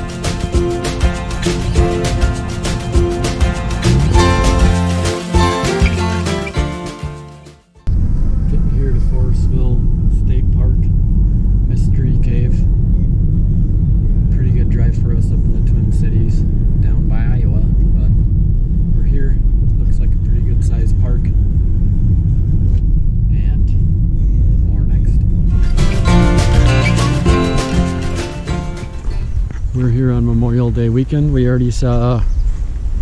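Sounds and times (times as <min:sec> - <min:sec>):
car road and engine rumble: 0:00.0 - 0:07.2, 0:07.8 - 0:33.0.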